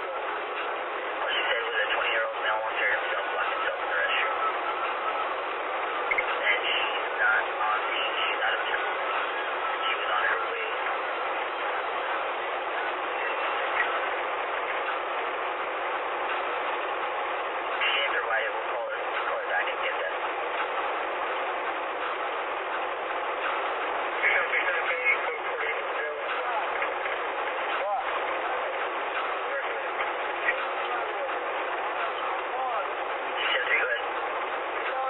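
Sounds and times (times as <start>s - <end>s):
road and engine noise: 0.0s - 35.0s.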